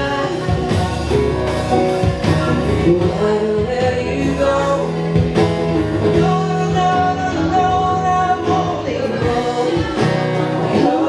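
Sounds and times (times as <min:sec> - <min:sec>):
acoustic guitar: 0:00.0 - 0:11.0
keyboard: 0:00.0 - 0:11.0
person singing: 0:00.0 - 0:11.0.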